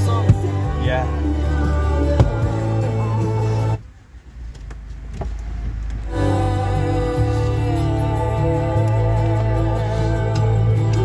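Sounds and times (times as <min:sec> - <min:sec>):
music from car radio: 0:00.0 - 0:04.0, 0:05.0 - 0:11.0
low rumble: 0:00.0 - 0:11.0.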